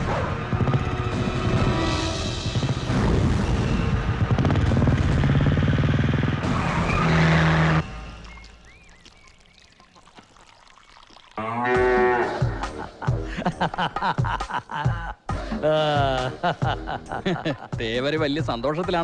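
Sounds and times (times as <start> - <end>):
engine-like drone: 0.0 - 8.5
faint chirps: 7.8 - 11.4
cow mooing: 11.4 - 12.5
loud music: 11.7 - 19.0.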